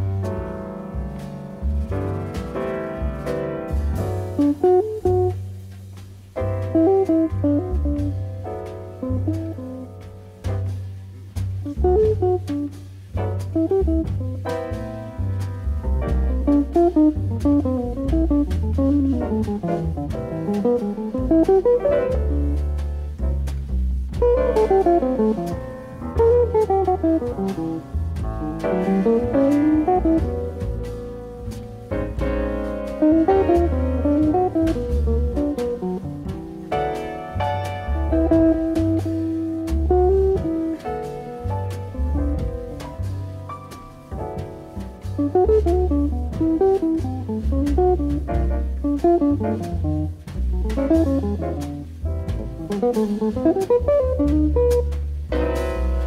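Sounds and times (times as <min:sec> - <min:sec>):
drums with cymbals: 0:00.0 - 0:56.0
electric jazz guitar lines: 0:00.0 - 0:56.0
upright bass line: 0:00.0 - 0:56.0.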